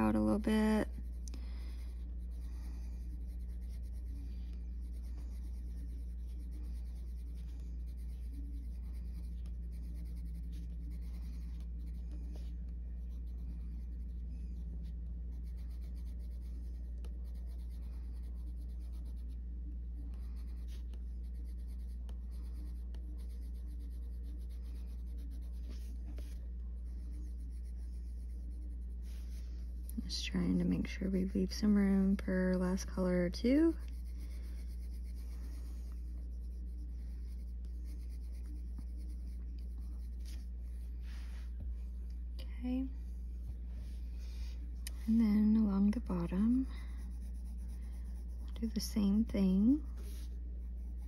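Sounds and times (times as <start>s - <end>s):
coloured pencil scratching on paper: 0.0s - 41.6s, 43.4s - 51.0s
steady low hum: 0.0s - 51.0s.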